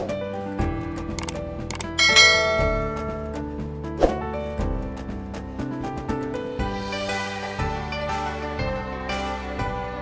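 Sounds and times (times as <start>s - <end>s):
background music: 0.0s - 10.0s
quick mouse clicks: 1.2s - 1.9s
bright bell ding: 1.8s - 3.5s.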